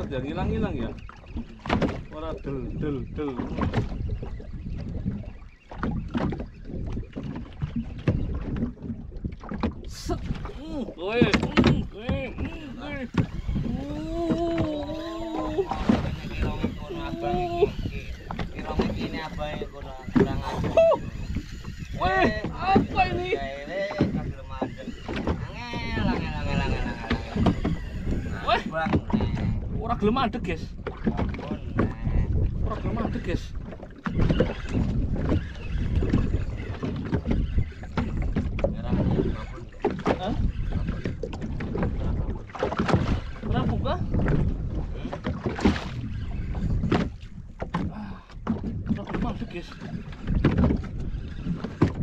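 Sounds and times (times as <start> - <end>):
water slapping against boat hull: 0.0 - 52.0
wind buffeting microphone: 0.0 - 52.0.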